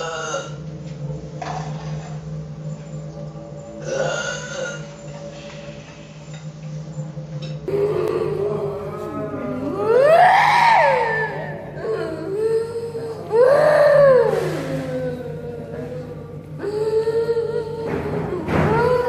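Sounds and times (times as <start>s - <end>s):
woman wailing and moaning: 7.7s - 19.0s.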